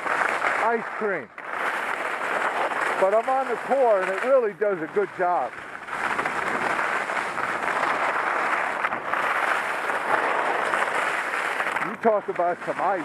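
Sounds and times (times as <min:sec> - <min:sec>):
skis scraping icy snow: 0:00.0 - 0:13.0.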